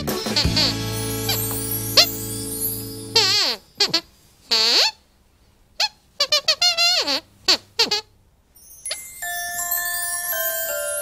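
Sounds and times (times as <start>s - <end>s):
puppet squeaker squeaks: 3.0s - 5.0s, 5.8s - 8.1s.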